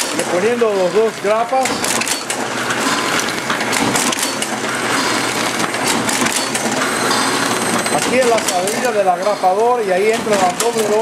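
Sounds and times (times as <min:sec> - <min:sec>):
booklet maker clattering: 0:00.0 - 0:11.0.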